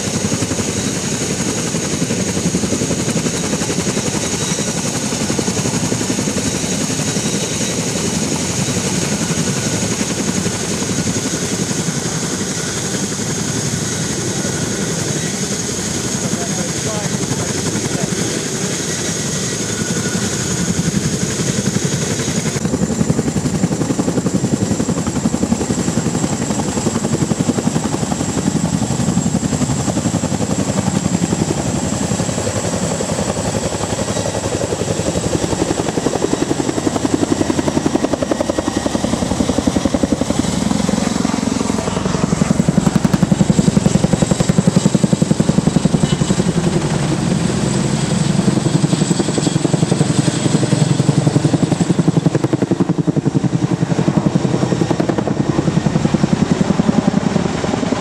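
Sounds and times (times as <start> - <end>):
helicopter rotor chop: 0.0 - 58.0
turbine whine: 0.0 - 58.0.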